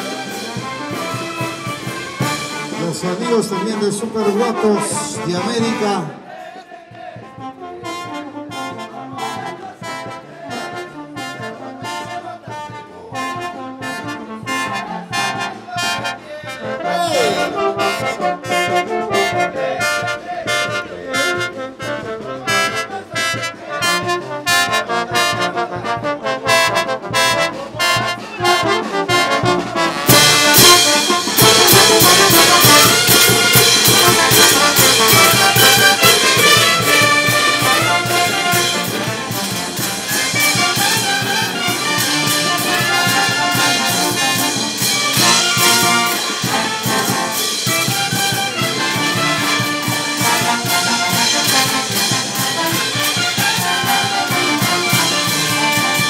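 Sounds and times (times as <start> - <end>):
brass band playing: 0.0 - 56.0.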